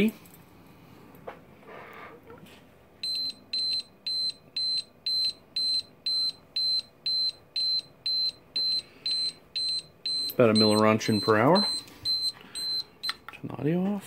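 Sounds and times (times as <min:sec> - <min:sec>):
survey meter beeping: 0:03.0 - 0:13.2.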